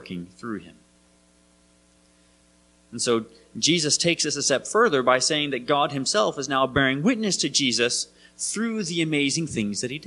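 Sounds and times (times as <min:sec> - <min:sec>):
man speaking: 0:00.0 - 0:00.8, 0:02.9 - 0:10.0
electrical mains hum: 0:00.0 - 0:10.0.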